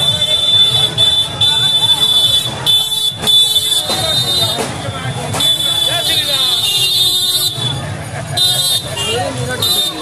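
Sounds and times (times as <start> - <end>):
vehicle horn tooting: 0.0 - 7.8, 8.4 - 10.0
crowd chatter: 0.0 - 10.0.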